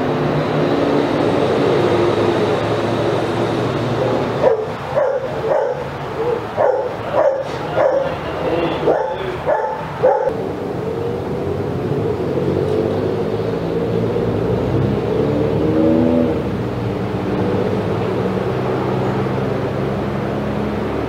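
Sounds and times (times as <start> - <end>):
dog barking: 4.0 - 10.3.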